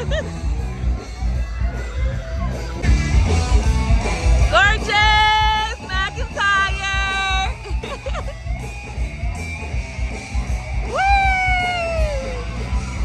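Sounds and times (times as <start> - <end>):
loud rock music: 0.0 - 13.0.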